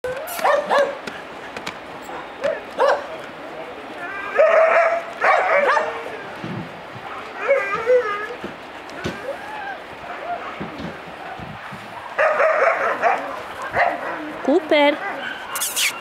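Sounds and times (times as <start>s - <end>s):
puppies yipping and barking: 11.2s - 16.0s.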